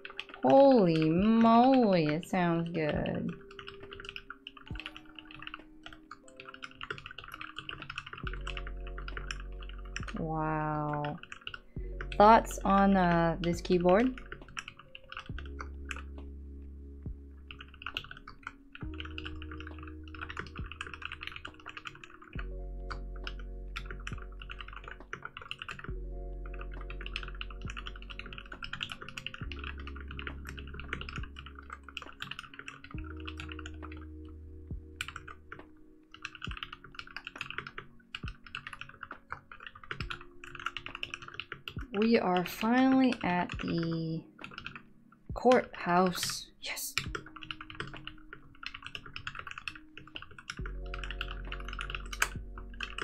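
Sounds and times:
mechanical keyboard typing: 0:00.0 - 0:16.4, 0:17.1 - 0:53.0
background music with bass: 0:15.3 - 0:18.0, 0:22.4 - 0:25.2, 0:25.9 - 0:28.7, 0:33.0 - 0:35.6, 0:50.6 - 0:53.0.

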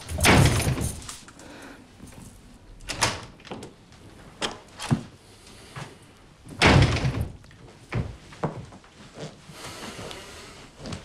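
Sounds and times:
door slamming shut: 0:00.0 - 0:01.1, 0:06.6 - 0:07.4.

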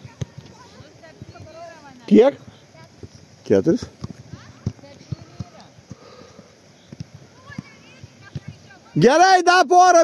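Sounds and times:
footballs being kicked: 0:00.0 - 0:02.0, 0:03.8 - 0:06.1, 0:06.9 - 0:08.7.

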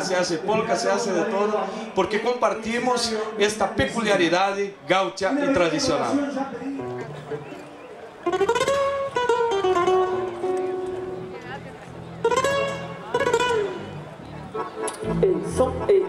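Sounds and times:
plucked acoustic guitar: 0:06.8 - 0:15.8.

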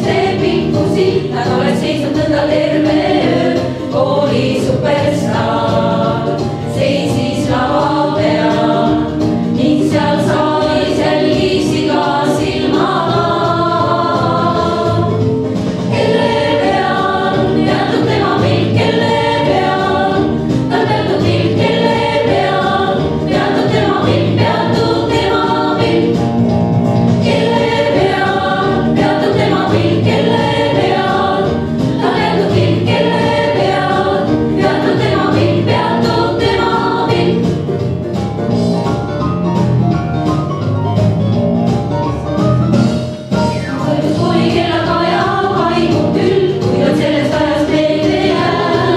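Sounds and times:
women's choir singing in harmony: 0:00.0 - 0:38.7, 0:43.8 - 0:48.9.

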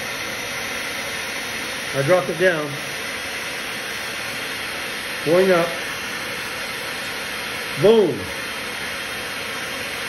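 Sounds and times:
hair dryer blowing: 0:00.0 - 0:10.0.

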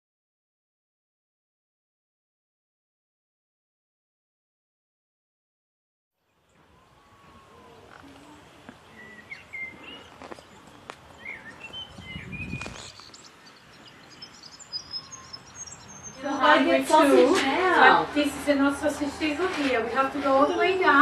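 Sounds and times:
small birds chirping: 0:06.2 - 0:17.1.

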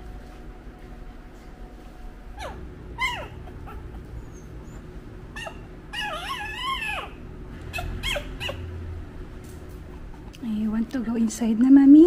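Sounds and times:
puppies whimpering and squeaking: 0:02.3 - 0:08.8.

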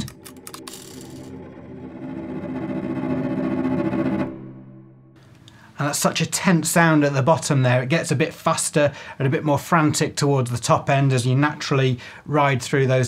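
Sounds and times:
cello tremolo note: 0:00.2 - 0:05.3.

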